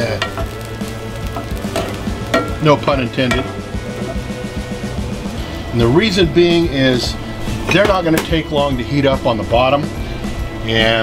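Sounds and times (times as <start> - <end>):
steak sizzling in skillet: 0.0 - 11.0.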